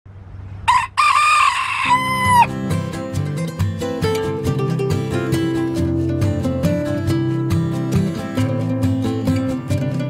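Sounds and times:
rooster crowing: 0:00.7 - 0:02.5
plucked acoustic guitar music: 0:02.2 - 0:10.0.

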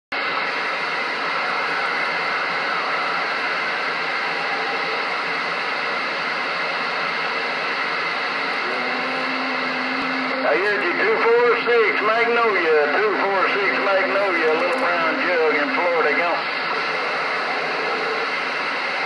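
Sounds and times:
radio static hiss: 0:00.1 - 0:19.0
steady low tone: 0:08.3 - 0:16.2.

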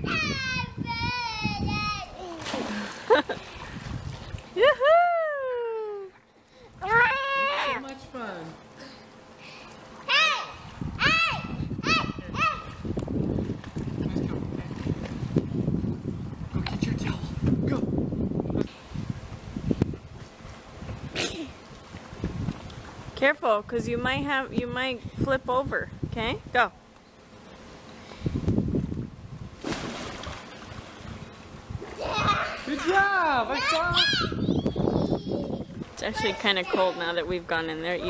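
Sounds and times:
pool water splashing: 0:02.0 - 0:25.8, 0:26.6 - 0:34.4, 0:35.0 - 0:38.0
child splashing into pool: 0:02.2 - 0:04.5, 0:29.6 - 0:31.2
water sloshing: 0:02.2 - 0:04.6, 0:28.8 - 0:33.9.

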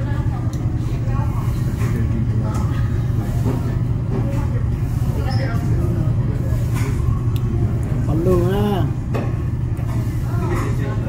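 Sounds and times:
restaurant background rumble: 0:00.0 - 0:11.0.

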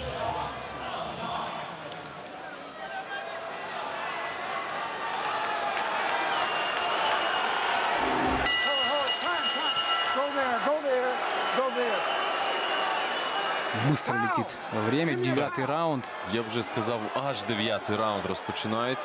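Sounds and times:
loud arena crowd: 0:00.0 - 0:19.0
boxing ring bell: 0:08.4 - 0:10.9.

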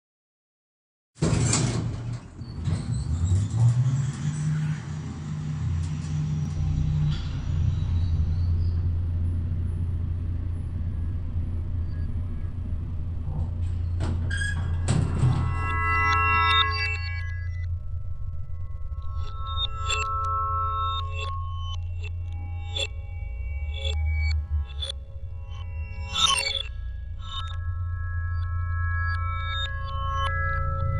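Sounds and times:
low rumbling engine-like hum: 0:03.3 - 0:15.4
faint high ringing tones: 0:13.8 - 0:30.9.

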